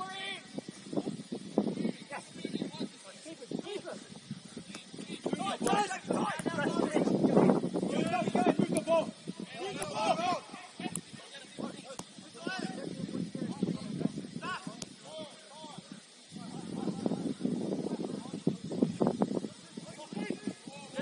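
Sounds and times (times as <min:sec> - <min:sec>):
distant people calling out: 0:07.8 - 0:17.4.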